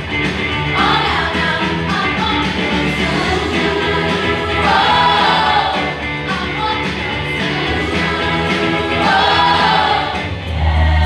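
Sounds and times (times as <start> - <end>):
mixed choir singing in harmony: 0.8 - 11.0.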